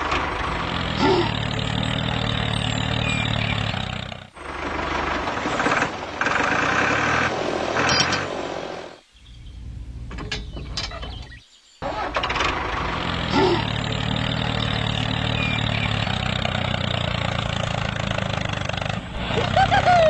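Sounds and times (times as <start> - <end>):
tractor engine chugging: 0.0 - 8.9, 11.8 - 20.0.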